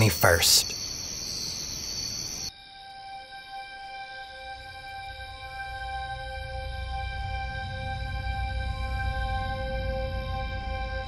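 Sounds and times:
crickets chirping: 0.0 - 11.0.

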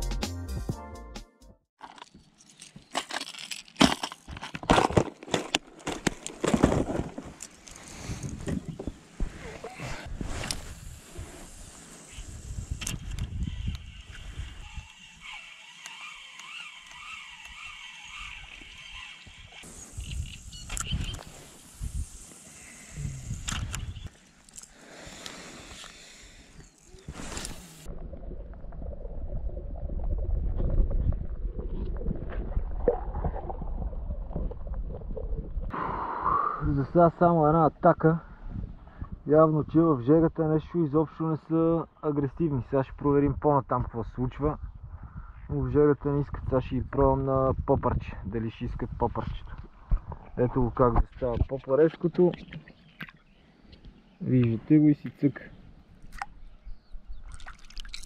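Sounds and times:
spinning reel being worked: 12.0 - 20.6
muffled underwater rumble: 27.9 - 35.7.

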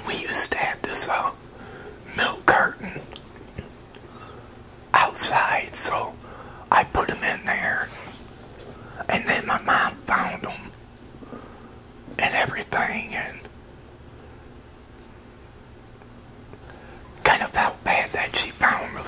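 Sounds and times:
man whispering: 0.0 - 1.4, 2.0 - 3.2, 5.0 - 8.2, 9.0 - 10.8, 12.2 - 13.5, 17.2 - 19.0.

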